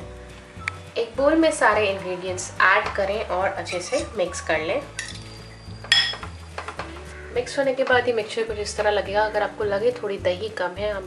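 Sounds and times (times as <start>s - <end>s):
soft background music: 0.0s - 11.0s
spoon clinking glass bowl: 3.7s - 4.2s, 4.9s - 6.3s.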